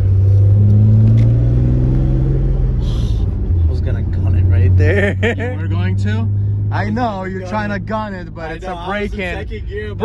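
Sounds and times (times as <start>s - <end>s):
car engine accelerating: 0.0s - 10.0s.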